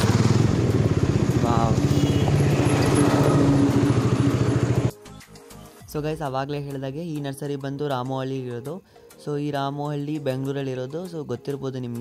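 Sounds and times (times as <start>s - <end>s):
motorcycle engine running: 0.0s - 4.9s.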